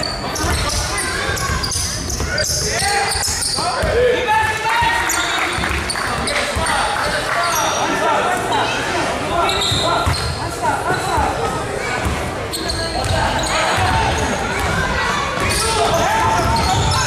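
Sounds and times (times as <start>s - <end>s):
sneaker squeaks: 0.0s - 4.0s, 4.8s - 17.0s
voices echoing in a gym: 0.0s - 17.0s
basketball bouncing on a court: 5.5s - 6.7s, 12.0s - 17.0s.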